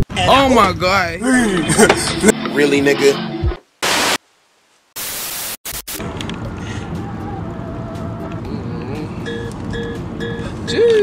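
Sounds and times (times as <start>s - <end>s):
loud static hiss: 3.2s - 6.3s.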